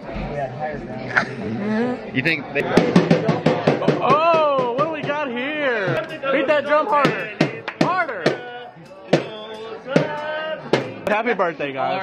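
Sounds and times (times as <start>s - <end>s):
hand drum struck hard: 2.8s - 6.1s, 9.1s - 11.1s.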